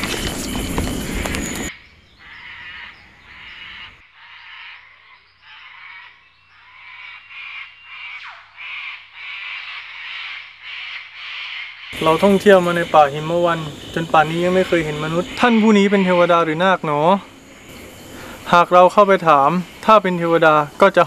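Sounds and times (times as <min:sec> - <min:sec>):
animal calls in night forest: 0:00.0 - 0:21.0.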